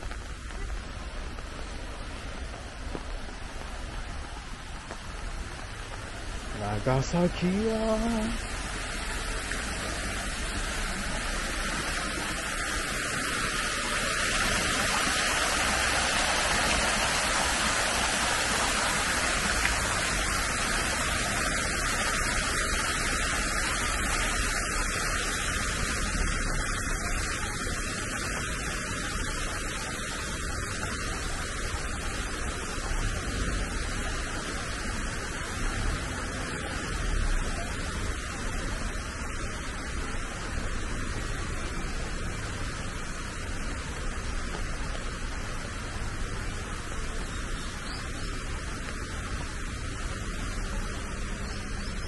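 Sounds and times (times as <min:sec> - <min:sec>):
rain falling: 0:00.0 - 0:52.0
water cascading into pool: 0:00.0 - 0:52.0.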